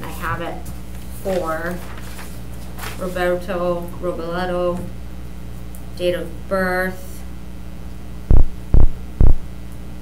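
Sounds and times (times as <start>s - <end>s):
electrical hum: 0.0s - 10.0s
loud low thumps: 8.2s - 9.5s.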